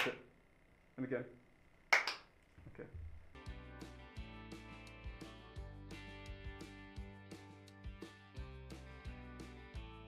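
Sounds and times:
sharp hand clap: 0.0 - 0.2, 1.9 - 2.3.

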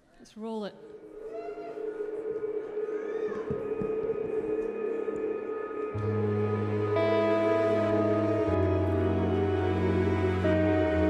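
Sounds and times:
gliding tone: 0.8 - 11.0
band sustained drone note: 0.9 - 11.0.

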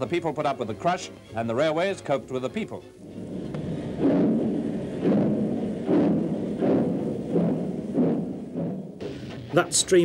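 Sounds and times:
steam locomotive chuffing: 3.1 - 8.9.

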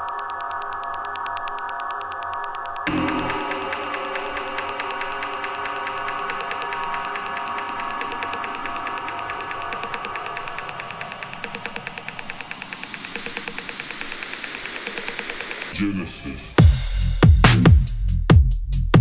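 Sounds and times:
electronic pad tones: 0.0 - 15.7
fast high ticking: 0.0 - 15.8.

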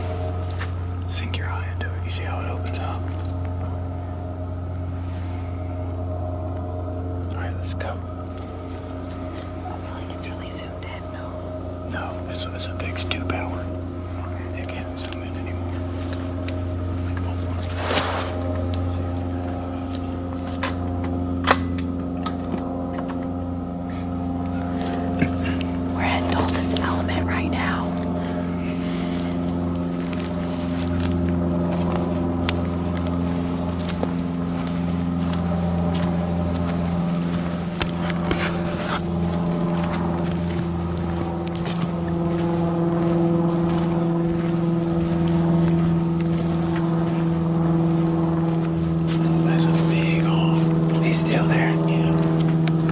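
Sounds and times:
engine humming: 0.0 - 52.9.

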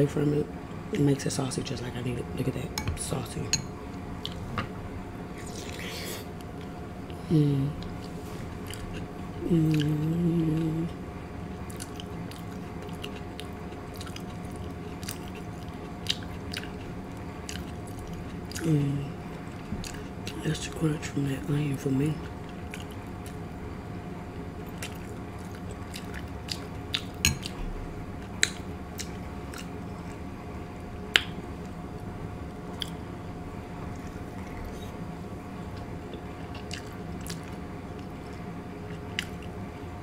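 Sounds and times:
faint steady hum: 0.0 - 40.0
person chewing food: 4.2 - 4.6, 7.8 - 10.8, 11.6 - 20.4, 22.2 - 23.5, 24.6 - 30.5, 32.5 - 33.2, 33.8 - 39.6.

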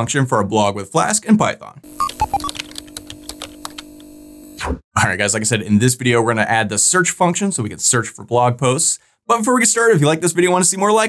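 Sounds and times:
short electronic blips: 1.9 - 2.6.

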